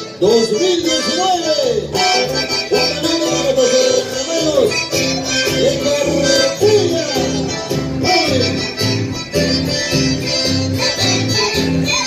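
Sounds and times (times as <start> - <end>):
accordion dance tune: 0.0 - 12.0.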